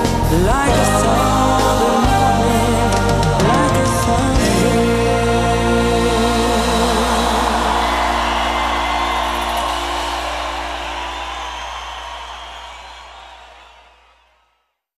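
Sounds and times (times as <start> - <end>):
person singing: 0.0 - 10.8
live band held chord: 0.0 - 12.9
crowd cheering and applauding: 0.0 - 14.6.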